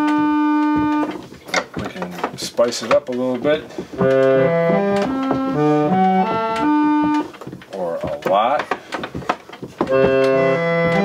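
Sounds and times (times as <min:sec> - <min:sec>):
reed organ chords: 0:00.0 - 0:01.4, 0:03.1 - 0:08.7, 0:09.8 - 0:11.0.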